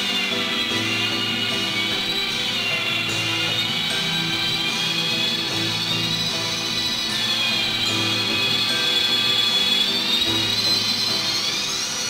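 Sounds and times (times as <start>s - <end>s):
zither drone with high whine: 0.0s - 12.0s.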